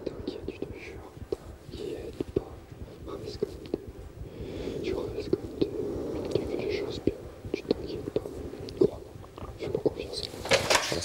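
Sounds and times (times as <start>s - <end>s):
man whispering: 0.0s - 11.0s.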